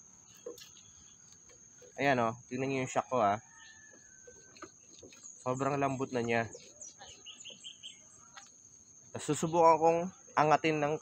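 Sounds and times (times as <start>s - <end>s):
bird chirping: 0.0s - 10.6s.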